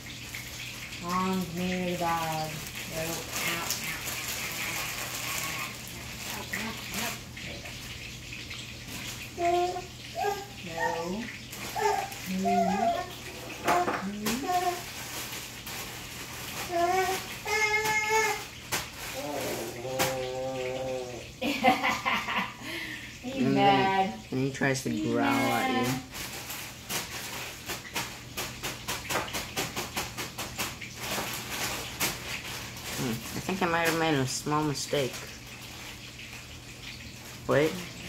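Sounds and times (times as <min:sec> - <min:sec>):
running water: 0:00.0 - 0:38.0.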